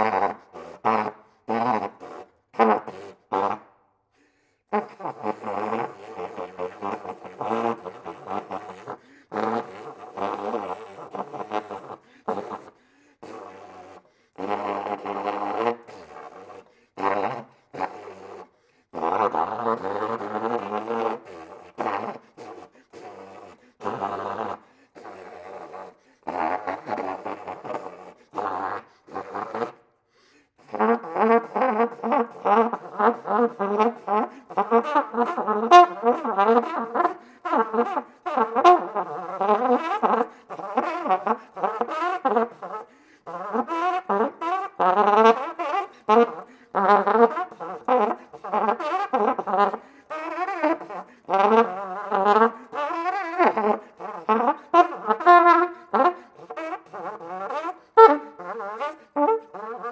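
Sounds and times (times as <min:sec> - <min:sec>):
solo flugelhorn playing: 0:04.7 - 0:29.8, 0:30.7 - 0:59.9.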